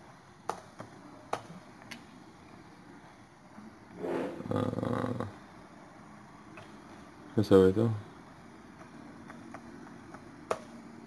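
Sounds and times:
man's drawn-out vocal sound: 0:04.4 - 0:05.4.

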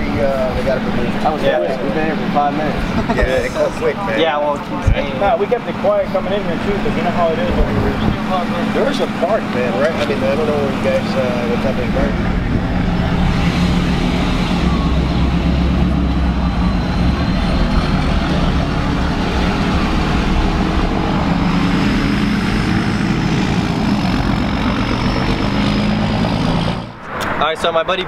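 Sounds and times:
truck engine rumble: 0:00.0 - 0:28.0.

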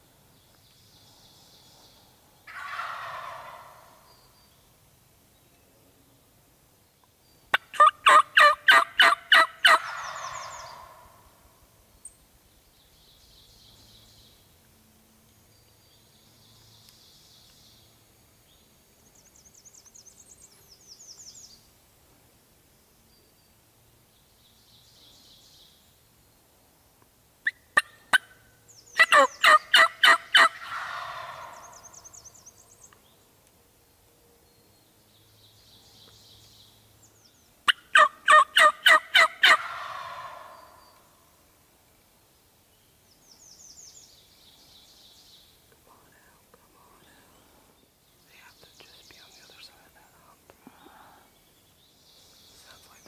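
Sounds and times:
wild turkey calling: 0:02.5 - 0:04.1, 0:07.5 - 0:11.2, 0:29.0 - 0:32.2, 0:37.7 - 0:41.1.

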